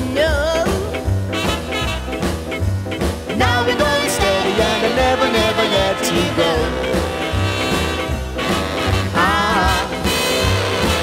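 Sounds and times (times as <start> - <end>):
ska band playing: 0.0 - 11.0.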